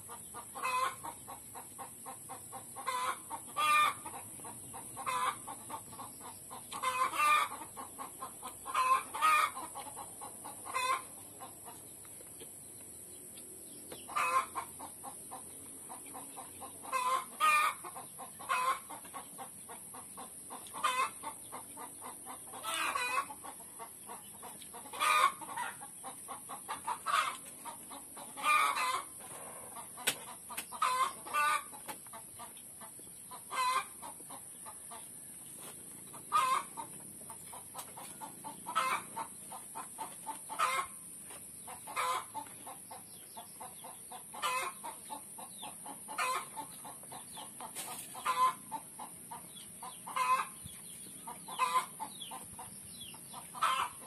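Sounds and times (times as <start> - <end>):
chickens clucking: 0.0 - 54.0.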